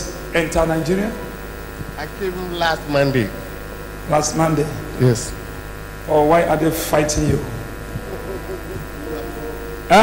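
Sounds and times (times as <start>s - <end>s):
electrical buzz: 0.0s - 10.0s.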